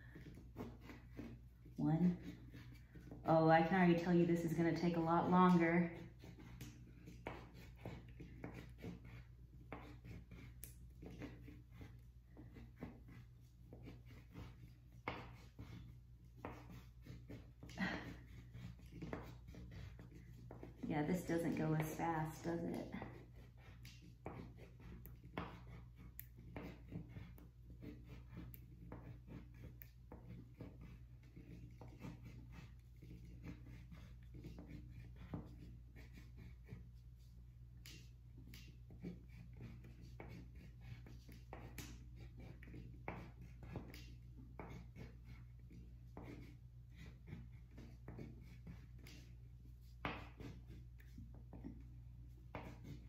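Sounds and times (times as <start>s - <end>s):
pen scratching on paper: 0.1s - 53.0s.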